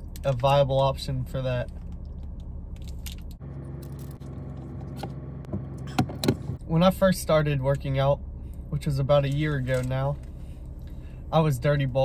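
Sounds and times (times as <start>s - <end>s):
low hum in car cabin: 0.0s - 12.0s.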